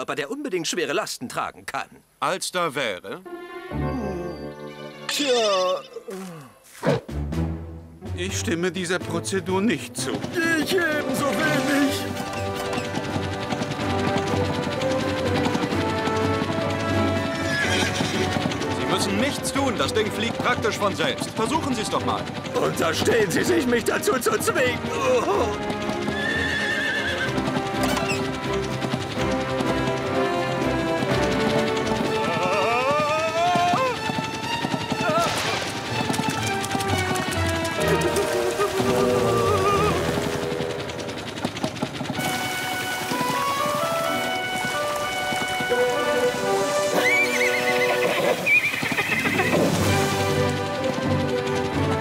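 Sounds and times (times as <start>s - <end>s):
background music: 2.8s - 52.0s
cartoon horse neighing: 17.3s - 18.3s, 24.9s - 28.2s, 32.2s - 34.1s, 35.0s - 35.4s, 37.8s - 40.2s, 47.0s - 49.8s.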